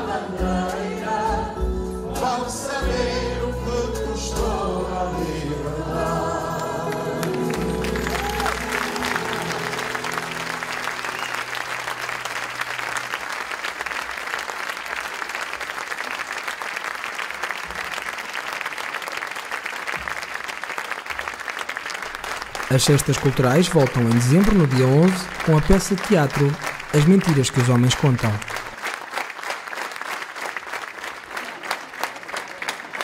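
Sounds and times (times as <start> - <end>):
man and woman singing: 0.0 - 7.8
guitar accompaniment: 5.9 - 12.4
audience applauding: 6.9 - 33.0.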